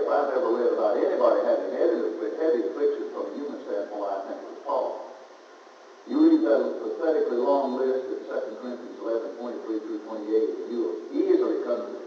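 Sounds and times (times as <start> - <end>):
man preaching: 0.0 - 5.2, 6.1 - 12.0.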